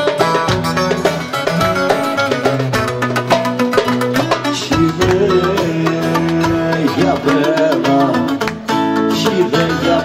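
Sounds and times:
plucked lute: 0.0s - 10.0s
strummed acoustic guitar: 0.0s - 10.0s
man singing: 4.4s - 10.0s.

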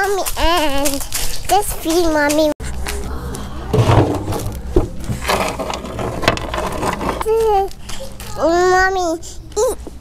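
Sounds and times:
low steady rumble: 2.6s - 7.6s
objects knocking on wooden bench: 3.8s - 7.2s.

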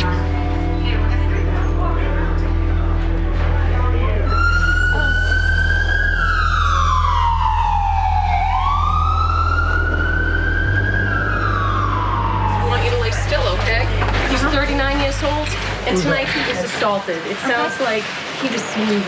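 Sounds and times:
emergency vehicle siren wailing: 0.0s - 1.8s, 4.1s - 16.4s.

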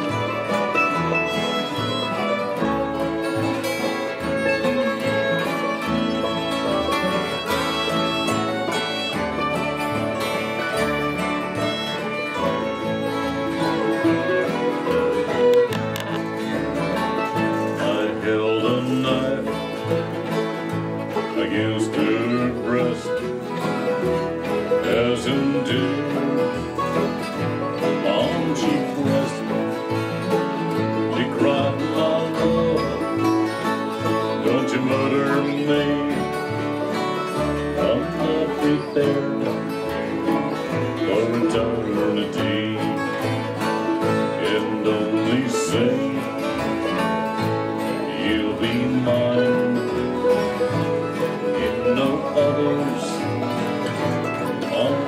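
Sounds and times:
acoustic string band playing: 0.0s - 55.0s
strummed acoustic guitar: 0.0s - 55.0s.

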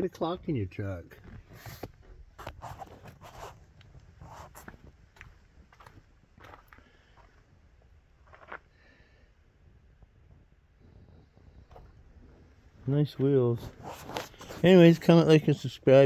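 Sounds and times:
footsteps on gravel: 4.2s - 7.4s
rustling handling noise: 13.2s - 15.1s.

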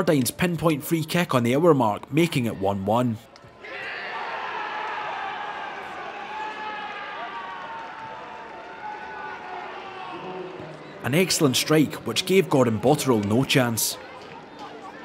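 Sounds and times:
football crowd cheering: 3.5s - 15.0s.

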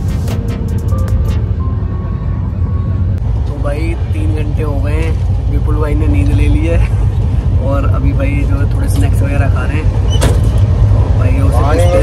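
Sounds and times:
train running low rumble: 0.0s - 12.0s
voices talking: 11.1s - 12.0s.

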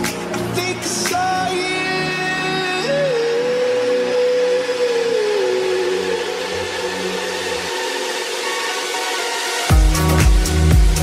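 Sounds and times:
low bass layer: 0.0s - 8.8s, 9.6s - 11.0s
synth note sliding down: 2.8s - 11.0s.

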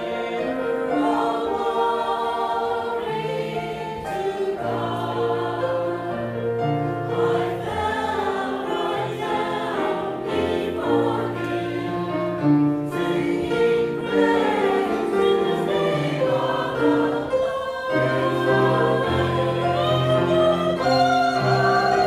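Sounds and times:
grand piano: 0.0s - 22.0s
mixed choir singing: 0.0s - 22.0s.

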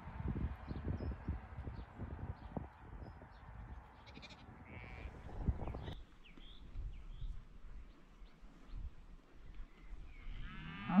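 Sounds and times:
sheep bleating: 4.1s - 5.2s.

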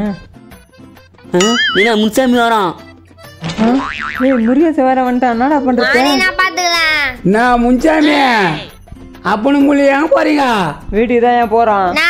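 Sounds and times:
cartoon boing sound effect: 1.4s - 2.0s, 3.5s - 4.6s.

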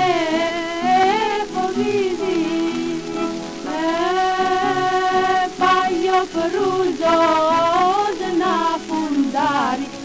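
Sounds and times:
folk music from old record: 0.0s - 10.0s
record surface noise: 0.0s - 10.0s.

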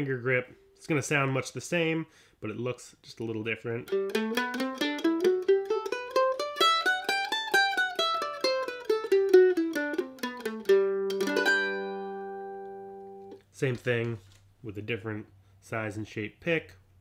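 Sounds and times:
mandolin picked notes: 3.7s - 13.4s
mandolin strummed chord: 3.9s - 13.4s.

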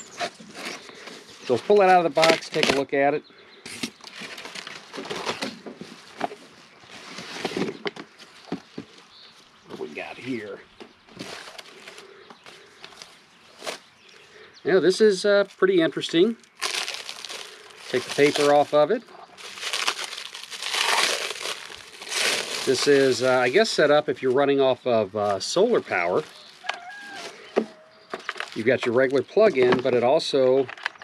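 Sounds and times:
plastic and cardboard rustling: 0.0s - 3.0s, 3.7s - 9.1s, 11.1s - 13.8s, 16.6s - 24.6s, 25.2s - 31.0s
plastic wrapping crinkling: 0.1s - 2.9s, 3.8s - 8.6s, 15.4s - 24.4s, 25.2s - 29.8s.

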